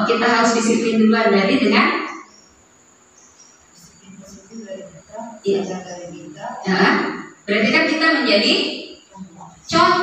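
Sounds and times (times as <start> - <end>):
high-pitched insect chirps: 0.3 - 10.0.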